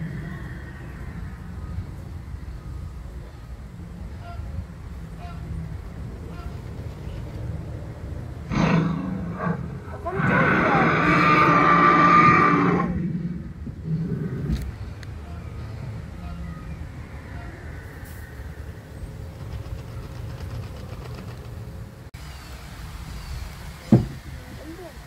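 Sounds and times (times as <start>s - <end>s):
loud dinosaur roar: 8.4s - 14.7s
dinosaur growl over loudspeaker: 8.5s - 14.6s.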